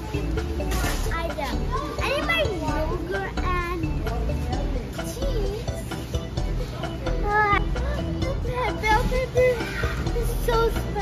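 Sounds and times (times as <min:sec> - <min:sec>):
background music: 0:00.0 - 0:11.0
young girl talking: 0:00.7 - 0:05.8, 0:07.1 - 0:11.0.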